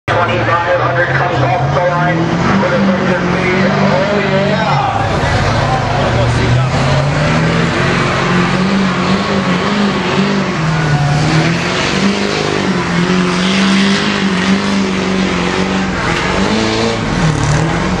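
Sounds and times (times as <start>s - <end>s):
diesel engine labouring at high revs: 0.1s - 18.0s.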